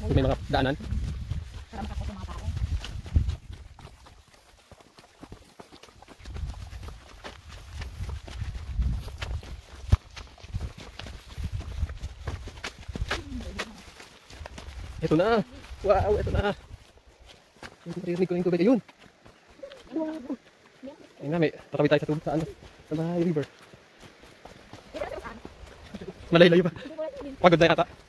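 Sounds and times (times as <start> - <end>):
wind rumbling on microphone: 0.0 - 4.3, 6.0 - 17.0
footsteps on rocky dirt trail: 0.0 - 28.0.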